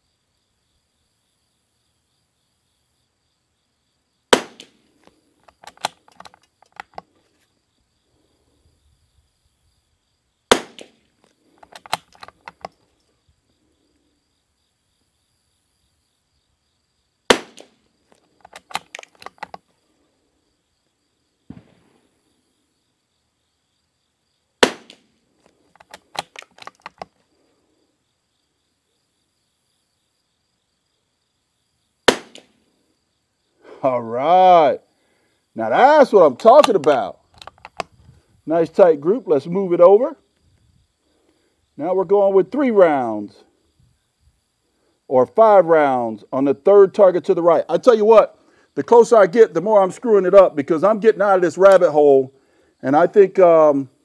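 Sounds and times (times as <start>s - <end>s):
rifle shots: 4.3s - 4.8s, 10.5s - 11.0s, 17.3s - 17.8s, 21.5s - 21.9s, 24.6s - 25.1s, 32.1s - 32.6s
rifle bolt clicks: 5.4s - 7.1s, 11.6s - 12.8s, 18.4s - 19.6s, 25.8s - 27.1s, 36.6s - 37.9s.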